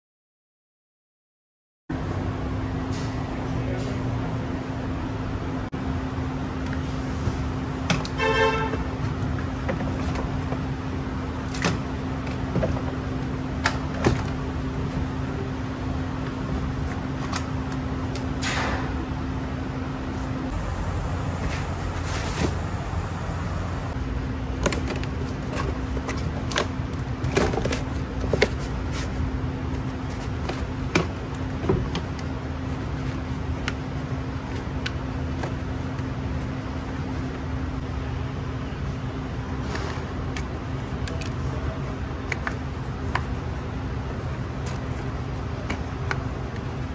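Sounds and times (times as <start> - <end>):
steady low hum: 1.9 - 46.9
car battery being handled: 24.1 - 37.2, 39.5 - 46.9.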